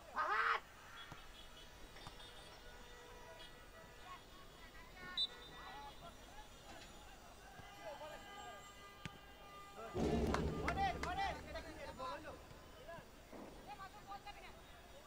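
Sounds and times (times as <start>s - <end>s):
distant players shouting: 9.9s - 13.2s.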